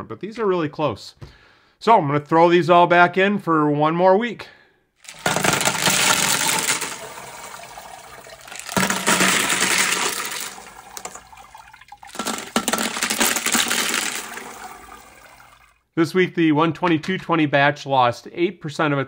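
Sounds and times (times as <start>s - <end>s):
stones clattering on metal: 5.0s - 7.1s, 8.4s - 11.4s, 12.0s - 14.8s
slurry splashing: 5.0s - 15.8s.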